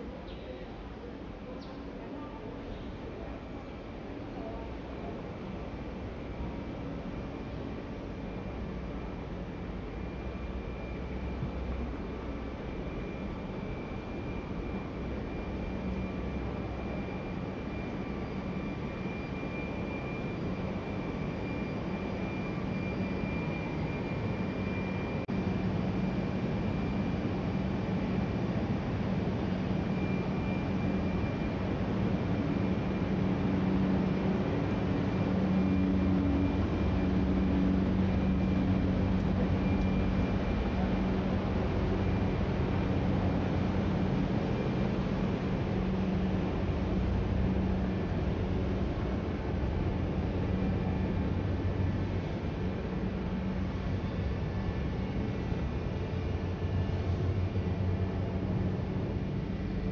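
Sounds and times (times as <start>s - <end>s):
ventilation machinery humming: 0.0s - 59.9s.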